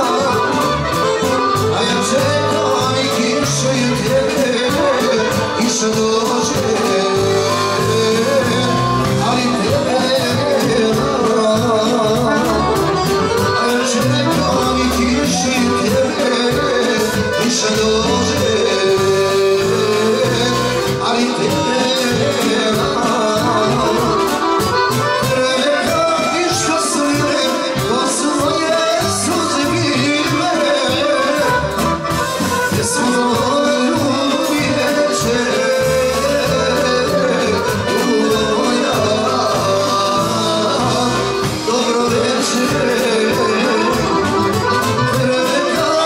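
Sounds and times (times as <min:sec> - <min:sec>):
button accordion melody: 0:00.0 - 0:46.0
drum kit beat: 0:00.0 - 0:46.0.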